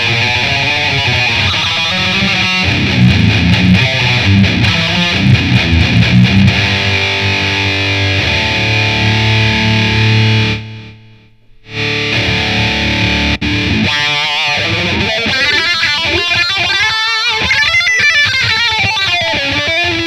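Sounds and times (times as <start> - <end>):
distorted electric guitar: 0.0 - 20.0.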